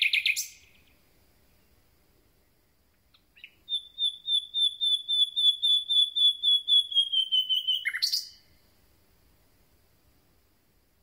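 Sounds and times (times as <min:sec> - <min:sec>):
nightingale singing: 0:00.0 - 0:01.8, 0:02.4 - 0:08.7.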